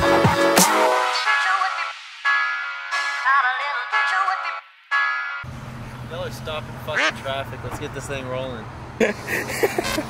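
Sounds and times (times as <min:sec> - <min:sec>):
truck engine idling: 0:05.5 - 0:10.0.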